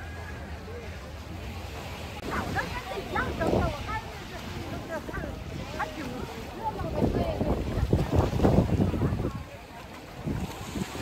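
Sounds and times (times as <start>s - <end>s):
wind buffeting microphone: 2.2s - 11.0s.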